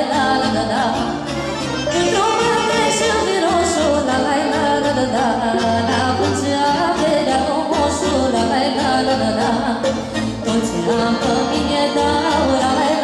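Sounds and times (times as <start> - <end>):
woman singing through microphone: 0.0 - 1.2, 1.9 - 13.0
accordion: 0.0 - 13.0
bass line: 0.0 - 13.0
violin: 0.0 - 13.0.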